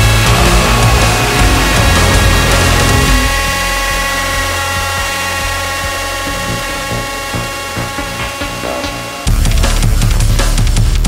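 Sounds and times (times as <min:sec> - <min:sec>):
sustained chord: 0:00.0 - 0:10.3
low bass drone: 0:00.0 - 0:11.0.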